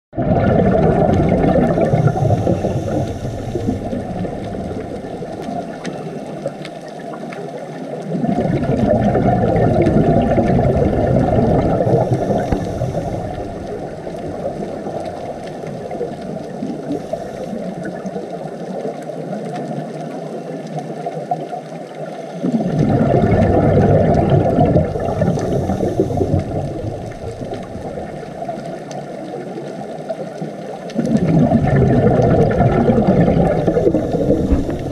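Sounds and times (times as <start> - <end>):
underwater regulator rushing: 0.1 - 6.9, 8.1 - 18.2, 22.4 - 29.0, 30.9 - 34.9
exhaled bubbles: 0.1 - 34.9.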